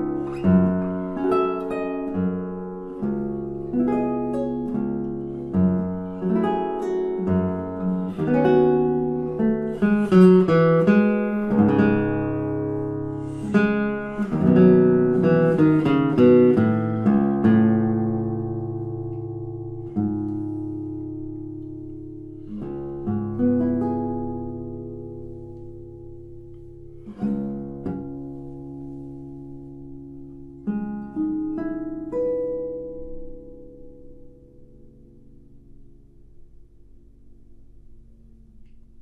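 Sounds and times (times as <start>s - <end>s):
classical guitar chords: 0.0s - 39.0s.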